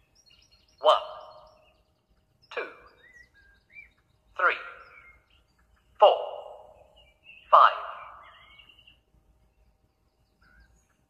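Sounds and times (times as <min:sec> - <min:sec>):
faint birdsong chirps: 0:00.0 - 0:11.0
echoing voice counting: 0:00.8 - 0:01.6, 0:02.4 - 0:03.0, 0:04.3 - 0:05.0, 0:06.0 - 0:08.3.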